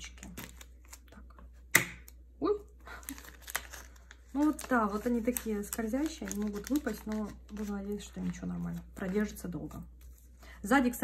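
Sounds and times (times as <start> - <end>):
plastic sleeves crinkling: 2.8 - 10.4.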